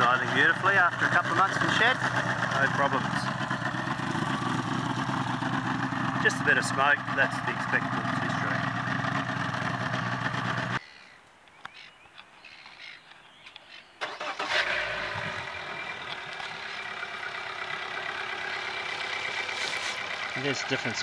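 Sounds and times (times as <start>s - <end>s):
four-stroke outboard starting and idling: 0.0s - 10.8s, 14.0s - 21.0s
two-stroke outboard idling: 0.0s - 10.8s, 14.6s - 21.0s.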